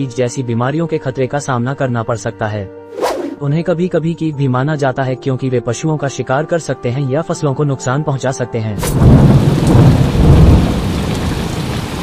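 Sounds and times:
heavy rain falling: 0:08.8 - 0:12.0
rolling thunder rumble: 0:08.8 - 0:12.0.

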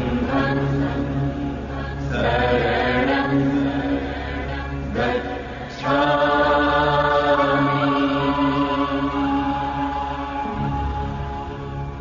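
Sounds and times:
voices chanting a long note: 0:00.0 - 0:12.0.

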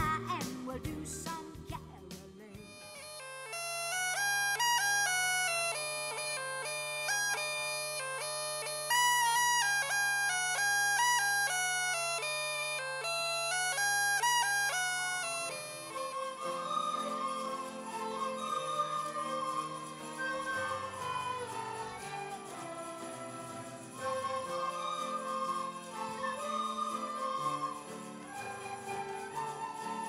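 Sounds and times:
bagpipe melody over drone: 0:02.6 - 0:23.2
violin: 0:02.6 - 0:30.0.

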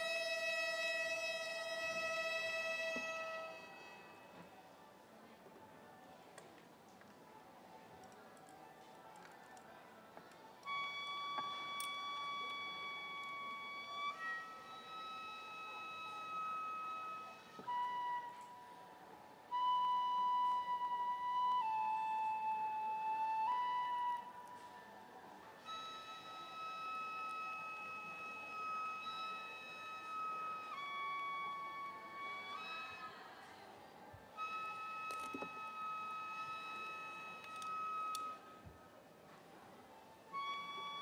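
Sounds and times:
bamboo flute playing long notes: 0:00.0 - 0:04.7, 0:10.6 - 0:33.6, 0:34.2 - 0:39.0, 0:40.0 - 0:41.0.

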